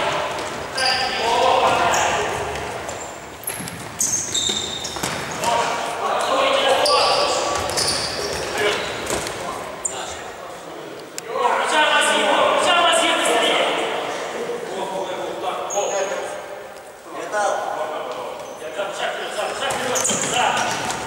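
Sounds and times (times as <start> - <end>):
players shouting: 0.0 - 2.8
shoes squeaking on floor: 0.0 - 10.2, 15.6 - 16.9, 18.1 - 18.8, 19.4 - 21.0
ball kicked and bouncing on court: 1.6 - 5.7.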